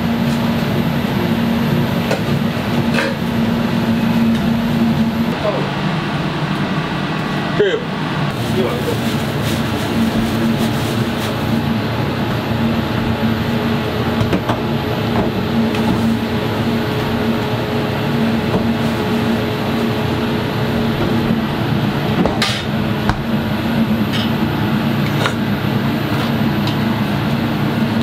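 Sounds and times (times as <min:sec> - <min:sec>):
kitchen equipment humming: 0:00.0 - 0:28.0.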